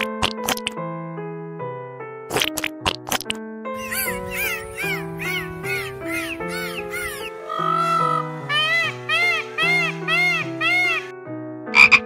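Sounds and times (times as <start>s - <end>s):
peafowl calls: 3.8s - 11.1s
keyboard music: 3.8s - 12.0s.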